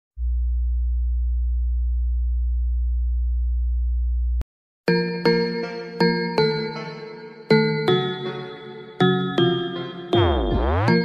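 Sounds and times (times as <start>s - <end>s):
deep electronic sine tone: 0.2s - 4.4s, 10.2s - 11.0s.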